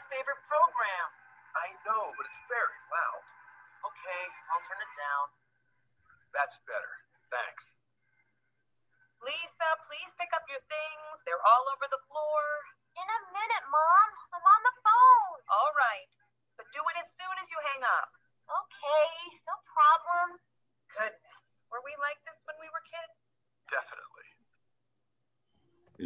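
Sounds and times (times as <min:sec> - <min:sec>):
voices over a call line: 0:00.0 - 0:05.4, 0:09.2 - 0:24.4.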